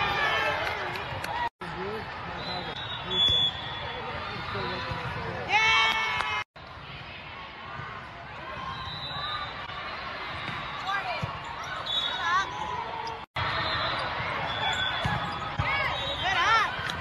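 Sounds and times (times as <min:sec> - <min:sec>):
voices of players and spectators: 0:00.0 - 0:17.0.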